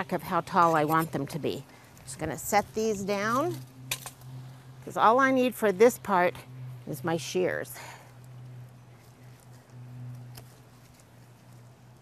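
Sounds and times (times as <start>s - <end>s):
steady low hum: 0.0s - 12.0s
pruning shears snipping: 2.9s - 4.4s, 10.0s - 11.2s.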